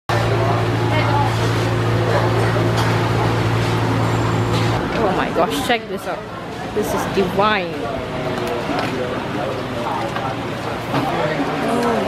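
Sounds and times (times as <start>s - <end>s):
people talking: 0.1s - 4.0s, 4.6s - 12.0s
low machine hum: 0.1s - 12.0s.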